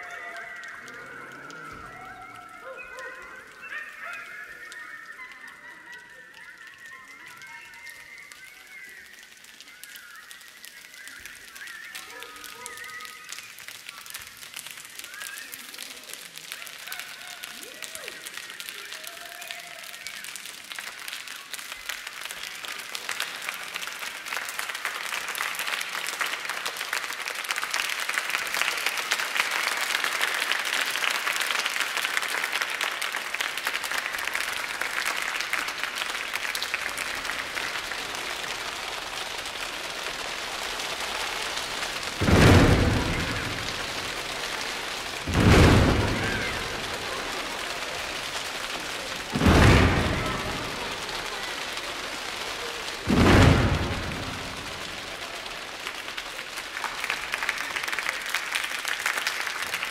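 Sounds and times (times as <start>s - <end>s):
hands snapping and clapping: 0.0s - 59.9s
loud low boom: 42.2s - 44.2s, 45.3s - 47.4s, 49.4s - 51.0s, 53.1s - 55.0s.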